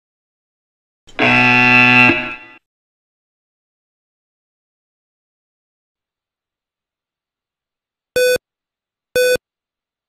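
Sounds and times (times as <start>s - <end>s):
electronic buzzer tone: 1.1s - 2.6s.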